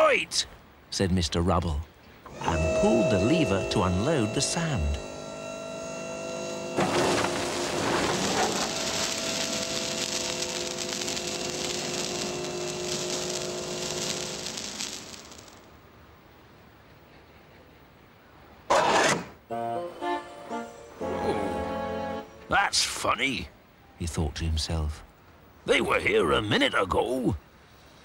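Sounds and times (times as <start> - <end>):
mechanical whine: 2.2 - 15.7
short loud burst: 6.8 - 15.6
sand pouring hiss: 6.8 - 15.7.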